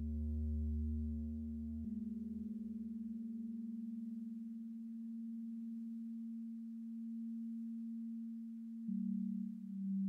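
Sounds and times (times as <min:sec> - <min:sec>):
low steady synthesizer tone: 0:00.0 - 0:10.0.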